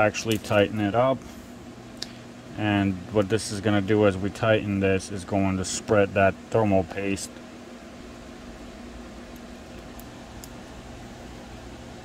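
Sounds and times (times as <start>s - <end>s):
equipment fan hum: 0.0s - 12.0s.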